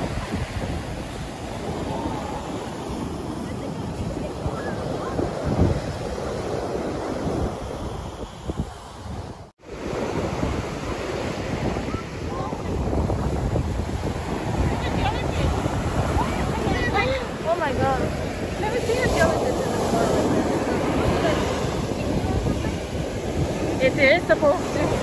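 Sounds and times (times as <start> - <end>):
ocean surf breaking on beach: 0.0 - 25.0
wind buffeting microphone: 0.0 - 25.0.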